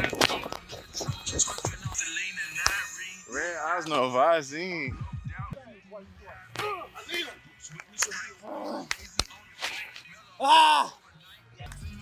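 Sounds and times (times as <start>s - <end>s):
men speaking: 1.0s - 11.0s
hands slapping: 8.8s - 10.0s.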